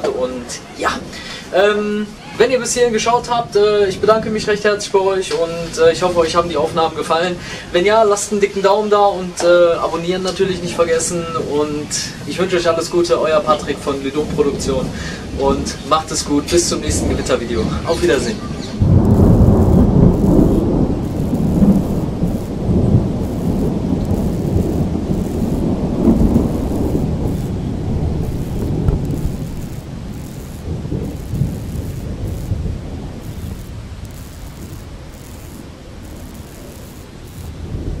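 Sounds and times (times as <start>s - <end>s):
rain falling: 2.0s - 38.0s
thunder rumbling: 14.2s - 38.0s.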